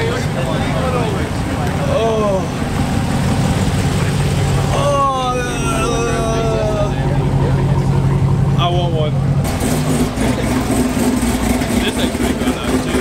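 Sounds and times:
voices: 0:00.0 - 0:09.4, 0:10.0 - 0:13.0
car engine idling: 0:00.0 - 0:13.0.

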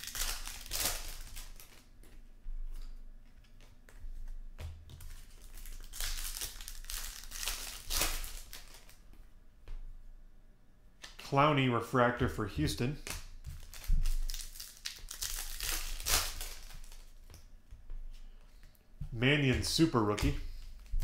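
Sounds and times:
foil wrapper crinkling and tearing: 0:00.0 - 0:02.0, 0:05.0 - 0:09.0, 0:13.0 - 0:17.4.

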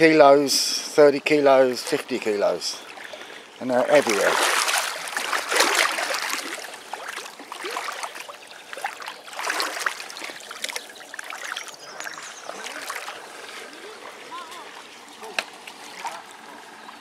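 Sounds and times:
muddy water sloshing and splashing: 0:01.8 - 0:17.0.

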